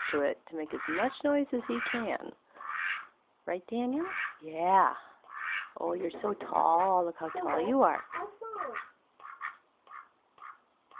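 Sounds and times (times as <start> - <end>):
duck quacking: 0.0 - 3.1, 5.2 - 5.7, 6.6 - 10.9.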